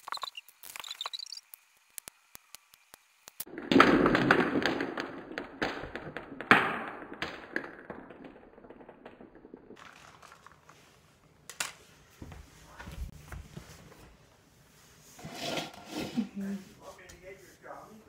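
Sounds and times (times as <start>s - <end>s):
balls rolling: 3.4s - 13.0s
plastic balls clattering: 3.5s - 11.8s.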